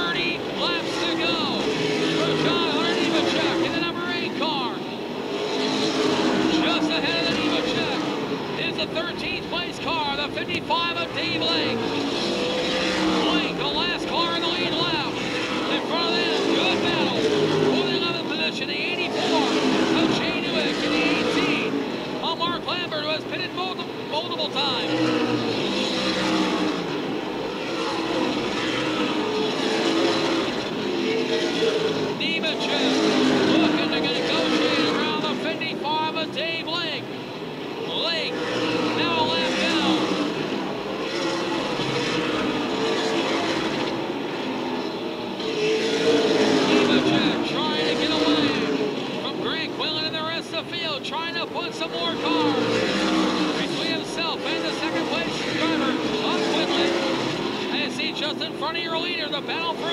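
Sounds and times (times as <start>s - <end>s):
stock car engines passing: 0.0s - 59.9s.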